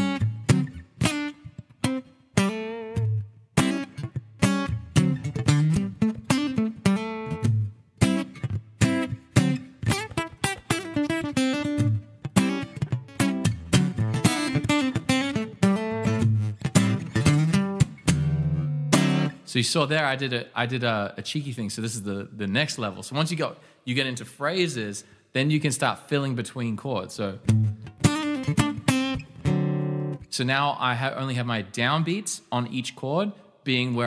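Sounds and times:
acoustic guitar strumming: 0.0 - 19.5, 27.5 - 30.4.

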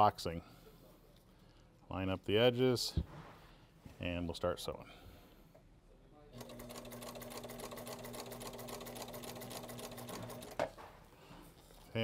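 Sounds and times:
sewing machine stitching: 6.4 - 10.8.

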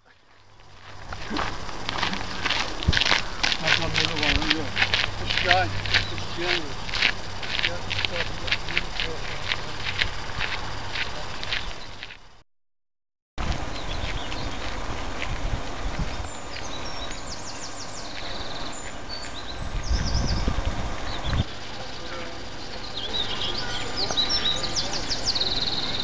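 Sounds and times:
songbirds singing: 0.0 - 12.3, 13.5 - 26.0
low rumble on microphone: 13.4 - 18.4, 19.6 - 21.5.

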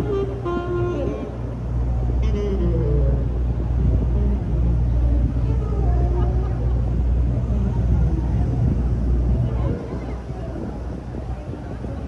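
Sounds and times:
passers-by talking: 0.0 - 12.0
traffic rumble: 0.0 - 12.0.

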